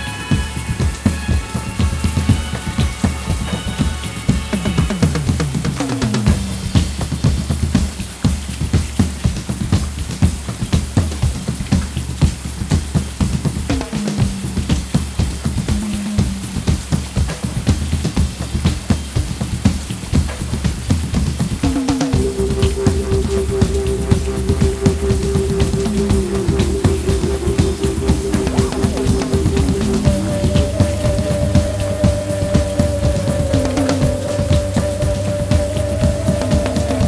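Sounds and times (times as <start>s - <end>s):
synthesizer: 0.0s - 9.6s, 21.0s - 37.0s
drum kit beat: 0.0s - 37.0s
electric bass: 0.0s - 37.0s
sustained high synth note: 22.2s - 37.0s.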